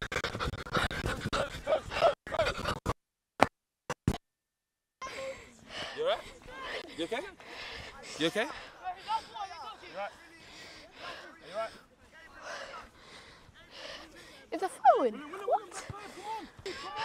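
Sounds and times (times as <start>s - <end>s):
young players shouting: 5.0s - 13.0s, 13.6s - 17.0s.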